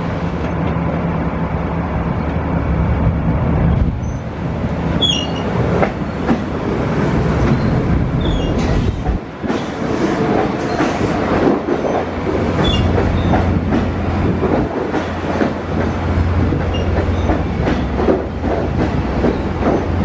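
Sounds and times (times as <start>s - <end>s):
train wheels clicking on rail joints: 4.9s - 20.0s
high squeaks: 5.0s - 5.5s.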